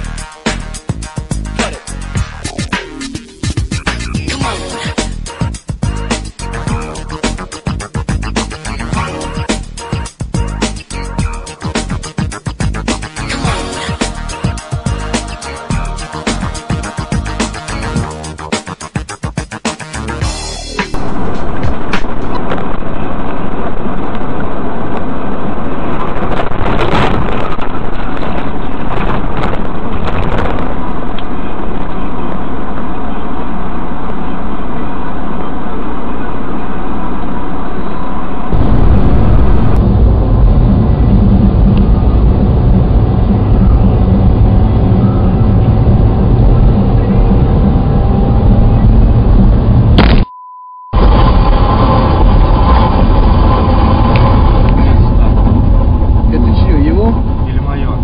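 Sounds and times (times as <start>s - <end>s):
road and engine noise in cabin: 30.7s - 38.6s, 39.7s - 50.0s.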